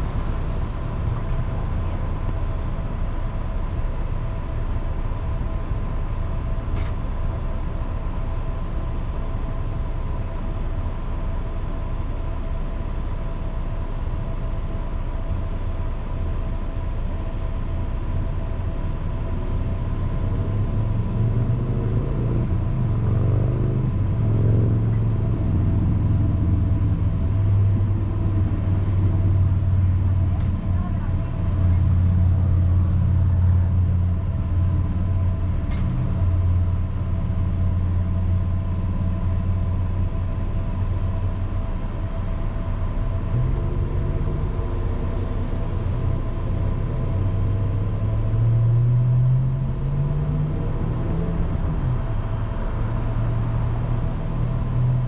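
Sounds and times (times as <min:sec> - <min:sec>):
car engine idling: 0:00.0 - 0:48.6, 0:49.6 - 0:55.0
steady whine: 0:00.0 - 0:48.8.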